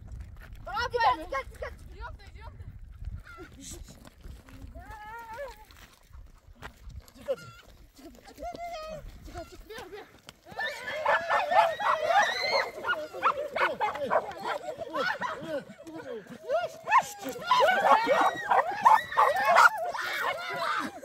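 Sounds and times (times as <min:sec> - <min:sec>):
people shouting and screaming: 0:04.5 - 0:05.9, 0:07.2 - 0:21.0.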